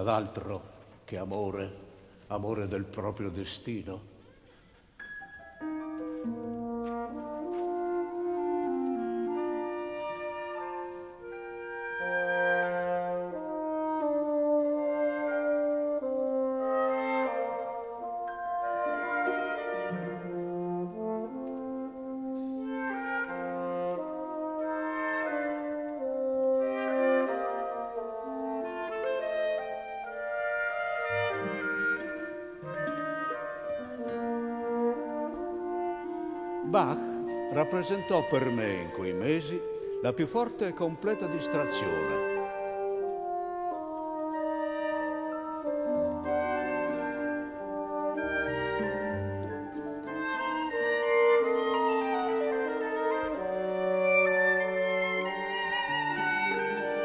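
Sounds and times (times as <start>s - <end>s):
orchestral music with held notes: 0.0s - 57.0s.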